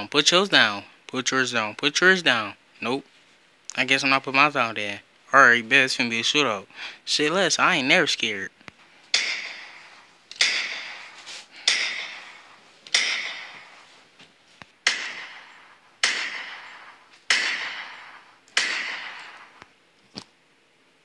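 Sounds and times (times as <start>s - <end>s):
gunshot sound effects: 14.8s - 19.6s.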